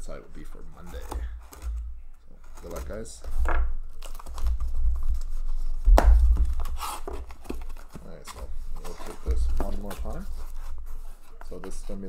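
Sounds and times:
cardboard flaps handled: 0:01.0 - 0:12.0
sharp knock: 0:05.9 - 0:06.6.

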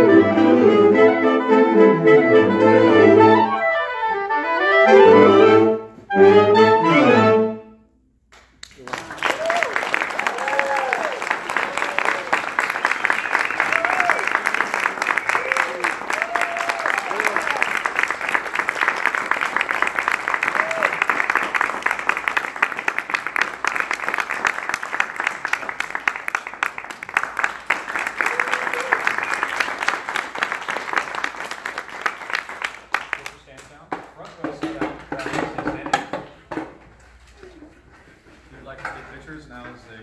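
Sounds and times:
audience applauding: 0:08.3 - 0:34.2
whoops and cheers: 0:09.1 - 0:14.4, 0:15.2 - 0:17.8, 0:20.4 - 0:21.1, 0:28.2 - 0:29.4.

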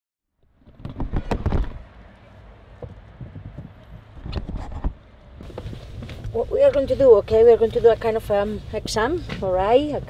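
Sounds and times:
rustling in seats: 0:03.4 - 0:10.0.

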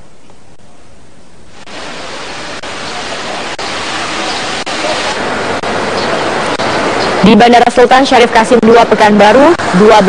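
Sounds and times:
steady outdoor rushing noise: 0:00.0 - 0:10.0.

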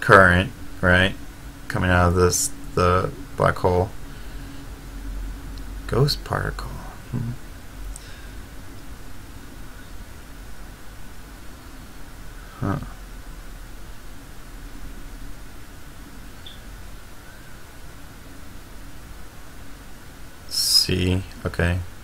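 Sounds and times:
low drone with faint high tone: 0:00.0 - 0:22.0.

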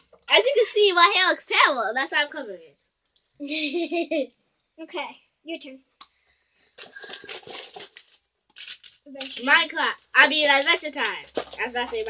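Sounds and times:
foil packet crinkling: 0:06.8 - 0:08.2.

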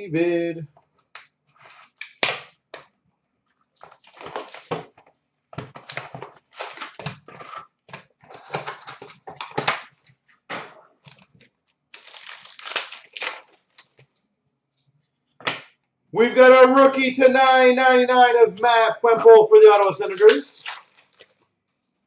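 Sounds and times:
foil packs crinkling and tearing: 0:03.8 - 0:04.9, 0:05.7 - 0:07.6, 0:11.0 - 0:14.0, 0:19.6 - 0:21.4.

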